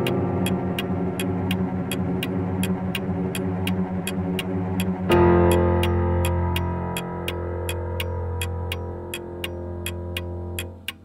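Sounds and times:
clock ticking: 0:00.0 - 0:11.0
held synthesizer chord with bass: 0:00.0 - 0:11.0.

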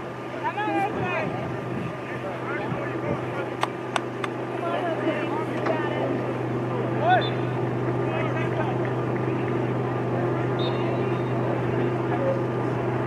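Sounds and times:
steady low hum: 0:00.0 - 0:13.0
distant shouts of players: 0:02.0 - 0:12.8.

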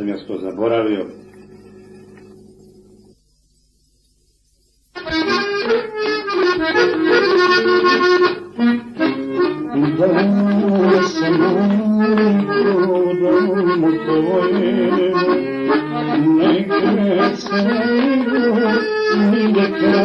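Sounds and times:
faint hum: 0:00.0 - 0:06.3
button accordion playing: 0:05.0 - 0:20.0.

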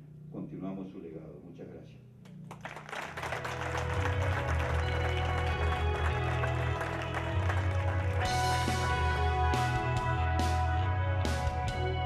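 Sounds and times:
background music with steady bass: 0:02.0 - 0:12.0
audience applauding: 0:02.5 - 0:09.3.

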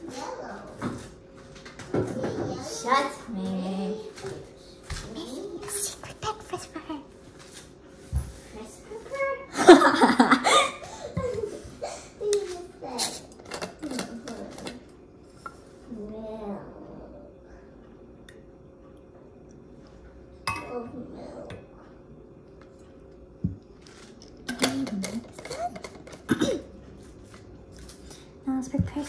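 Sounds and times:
child speaking: 0:00.0 - 0:00.9, 0:02.0 - 0:07.1, 0:08.6 - 0:09.6, 0:12.2 - 0:14.8, 0:15.9 - 0:17.2, 0:20.6 - 0:21.6.

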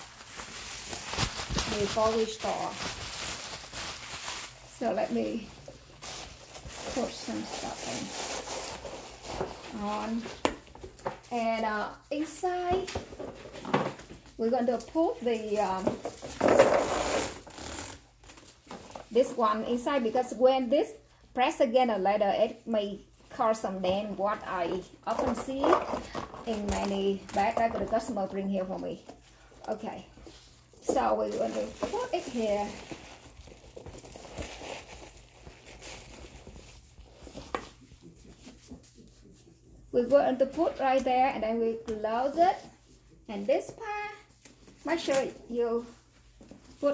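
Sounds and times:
packing stuffing crinkling: 0:00.0 - 0:10.2, 0:30.3 - 0:37.6.

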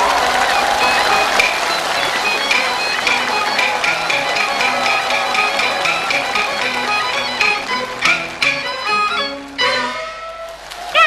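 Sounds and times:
sharp percussion clicks: 0:00.0 - 0:09.4
high reedy melody: 0:00.0 - 0:10.6.

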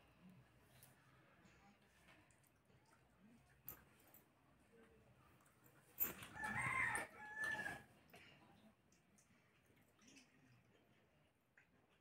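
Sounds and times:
rooster crowing: 0:06.3 - 0:07.9.

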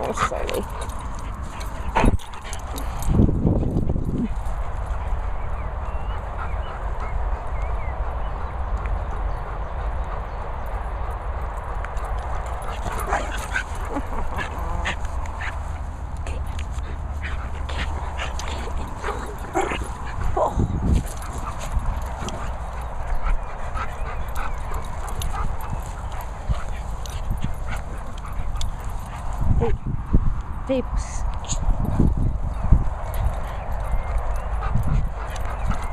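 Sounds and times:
wind rumble: 0:00.0 - 0:35.9
dogs yipping and whining: 0:12.4 - 0:29.9, 0:32.5 - 0:35.9.

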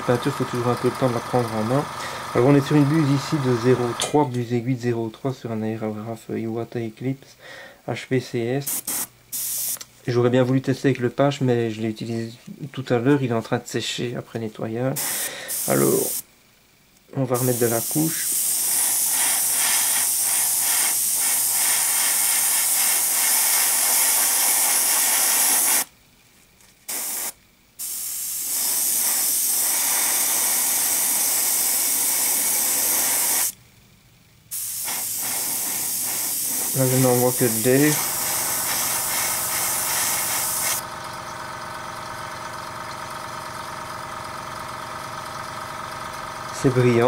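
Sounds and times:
steady motor hum: 0:00.0 - 0:04.2, 0:35.1 - 0:47.0
airbrush air hiss: 0:08.6 - 0:09.8, 0:15.0 - 0:16.3, 0:17.3 - 0:25.9, 0:26.8 - 0:33.6, 0:34.5 - 0:40.8.

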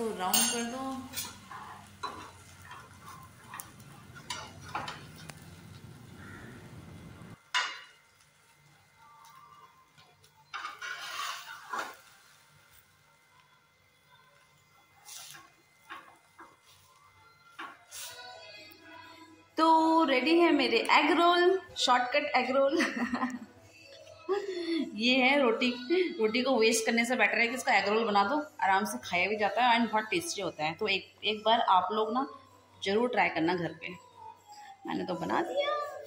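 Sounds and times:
metal spatula scraping frying pan: 0:10.5 - 0:12.3.

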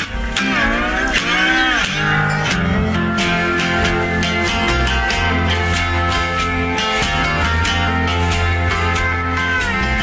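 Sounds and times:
held note bending in pitch: 0:00.0 - 0:10.0
live rock band music: 0:00.0 - 0:10.0.

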